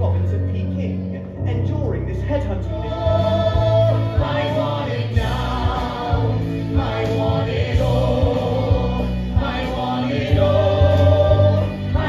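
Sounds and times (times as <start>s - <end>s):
heavy bass line: 0.0s - 12.0s
voices singing together: 2.9s - 12.0s.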